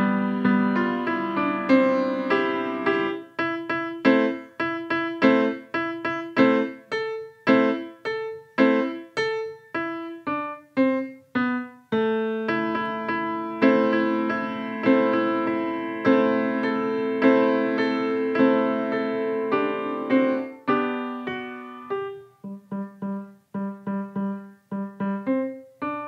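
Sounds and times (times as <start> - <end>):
grand piano melody: 0.0 - 26.0.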